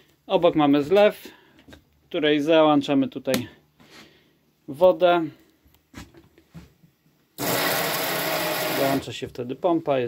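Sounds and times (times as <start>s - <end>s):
electric water pump humming: 7.4s - 9.0s.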